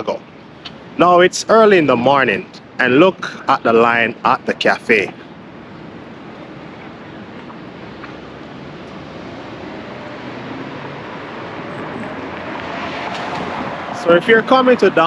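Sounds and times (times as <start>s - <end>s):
passing cars and tyres: 5.1s - 15.0s.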